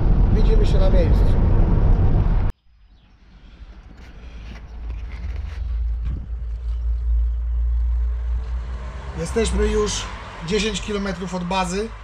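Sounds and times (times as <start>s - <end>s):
road rumble inside van: 0.0s - 2.6s, 4.7s - 11.7s.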